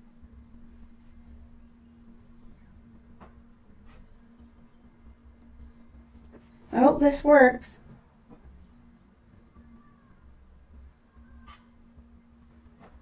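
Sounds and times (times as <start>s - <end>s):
faint electrical hum: 0.0s - 13.0s.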